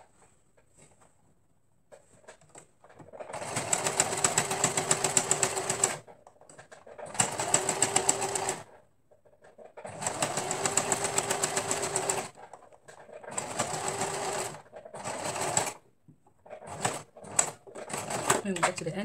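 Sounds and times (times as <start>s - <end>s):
sewing machine stitching: 2.3s - 15.8s, 16.4s - 19.0s.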